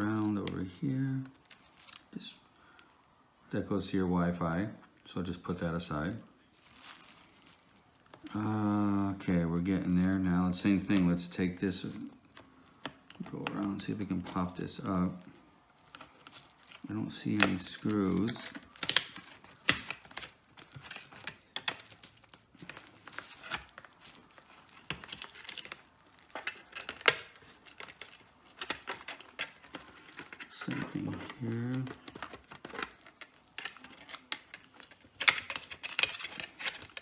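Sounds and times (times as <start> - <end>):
bubble wrap crinkling: 0.0 - 3.2, 4.9 - 37.0
plastic tool scraping and clicking: 18.2 - 37.0.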